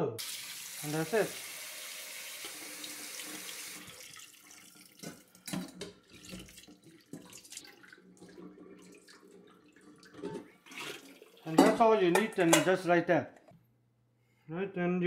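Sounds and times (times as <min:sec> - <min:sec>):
tap water running into bowl: 0:00.2 - 0:12.6.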